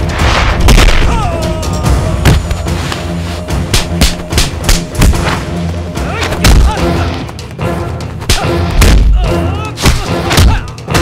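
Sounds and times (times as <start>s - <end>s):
loud background film score: 0.0s - 11.0s.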